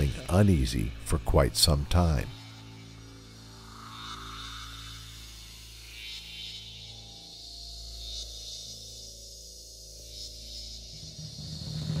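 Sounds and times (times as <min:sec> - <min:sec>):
high hiss: 0:00.0 - 0:12.0
steady low hum: 0:00.0 - 0:12.0.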